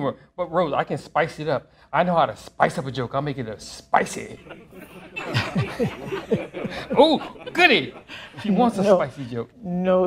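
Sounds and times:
person chuckling: 0:04.4 - 0:09.1.

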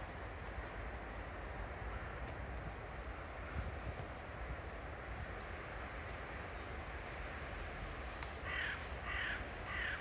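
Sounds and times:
low outdoor rumble: 0:00.0 - 0:10.0
bird giving harsh calls: 0:08.4 - 0:10.0.

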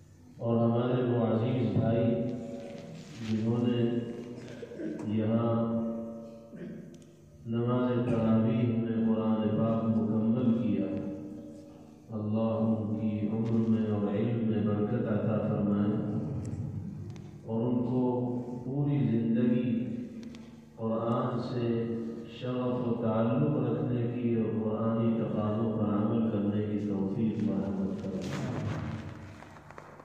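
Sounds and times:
man chanting religious recitation: 0:00.4 - 0:06.7, 0:07.4 - 0:16.7, 0:17.4 - 0:20.2, 0:20.8 - 0:29.0.

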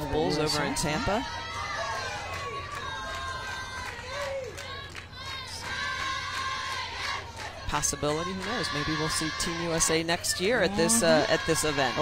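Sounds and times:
murmur of spectators: 0:00.0 - 0:12.0
distant voices shouting: 0:07.2 - 0:12.0.

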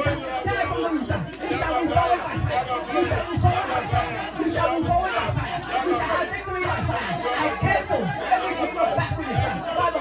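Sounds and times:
man praying into a microphone: 0:00.0 - 0:10.0
many voices praying aloud: 0:00.0 - 0:10.0.

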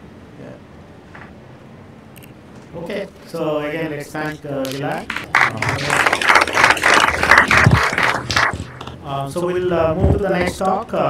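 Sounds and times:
audience applauding: 0:04.7 - 0:09.0.

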